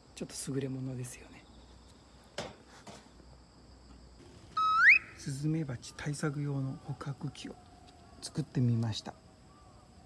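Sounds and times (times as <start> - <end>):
rising whistle sound effect: 4.6 - 5.3.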